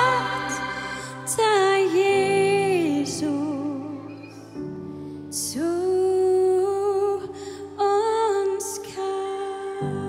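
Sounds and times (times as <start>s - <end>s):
soft instrumental accompaniment: 0.0s - 10.0s.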